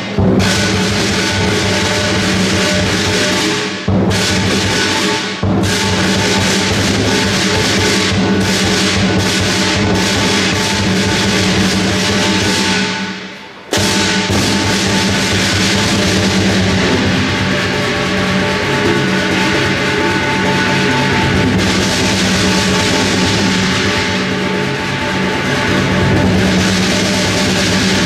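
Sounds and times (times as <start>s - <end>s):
cymbals clashing: 0.0s - 28.0s
gong: 0.0s - 28.0s
large drum beating: 0.0s - 28.0s.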